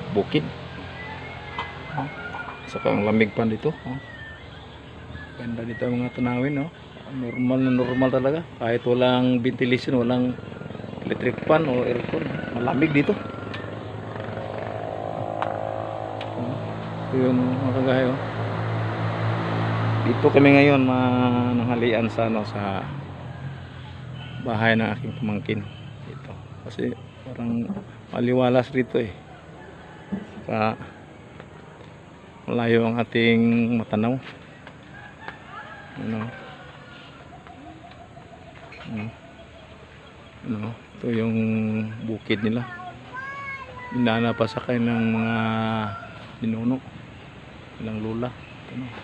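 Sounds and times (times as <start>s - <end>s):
faint bird calls: 0.4s - 16.7s, 21.3s - 49.0s.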